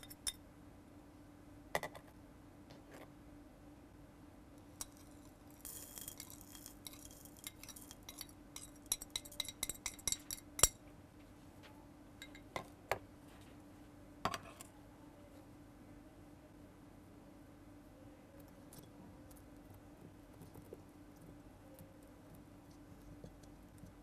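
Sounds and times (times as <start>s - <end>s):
spoon clinking on glass: 0.0s - 0.4s, 4.8s - 10.8s, 12.2s - 12.6s
metal spoon scraping soil on glass: 4.8s - 10.7s
glassware tapping: 6.0s - 10.8s, 12.2s - 12.7s.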